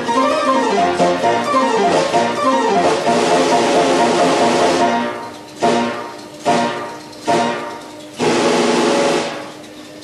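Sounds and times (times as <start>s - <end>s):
orchestrion chord: 0.0s - 7.7s.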